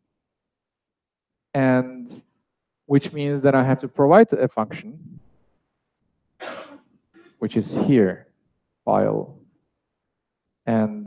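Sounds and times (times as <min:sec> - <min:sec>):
person coughing: 0:06.4 - 0:08.0.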